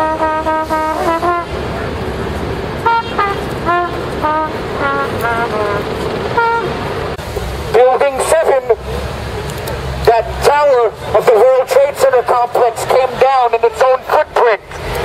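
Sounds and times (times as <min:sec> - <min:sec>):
car horns honking: 0:00.0 - 0:07.0
man speaking through megaphone: 0:07.7 - 0:09.0, 0:10.0 - 0:14.8.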